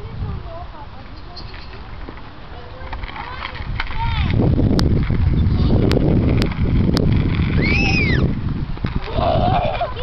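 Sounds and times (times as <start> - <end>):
low rumbling noise: 1.8 - 10.0
child squealing: 7.6 - 8.3, 9.1 - 10.0.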